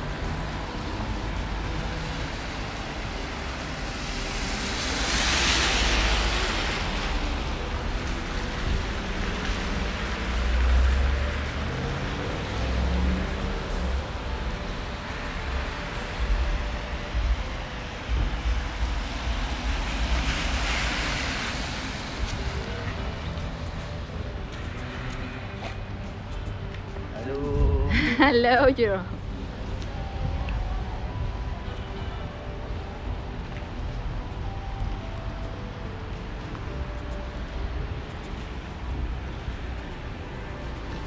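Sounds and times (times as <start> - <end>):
car tyres hissing on wet pavement: 0.0 - 23.4
wind rumble on microphone: 29.1 - 41.0.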